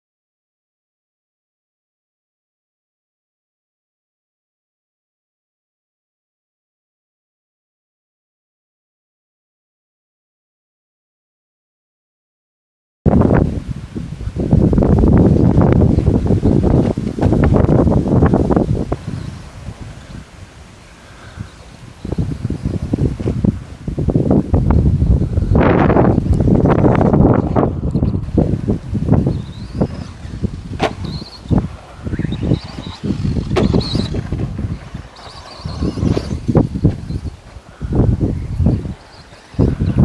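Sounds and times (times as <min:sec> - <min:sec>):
wind buffeting microphone: 0:13.1 - 0:40.0
small birds chirping: 0:29.2 - 0:40.0.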